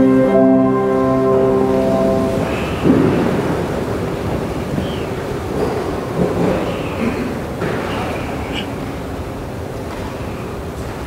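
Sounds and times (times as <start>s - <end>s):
held musical notes: 0.0s - 5.6s
rushing room noise rumble: 0.0s - 11.0s.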